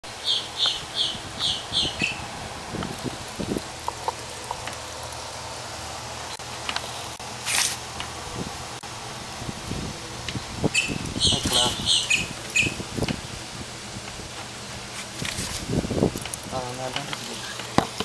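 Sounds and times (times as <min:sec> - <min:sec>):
small bird chirping: 0:00.2 - 0:02.2, 0:10.7 - 0:12.8.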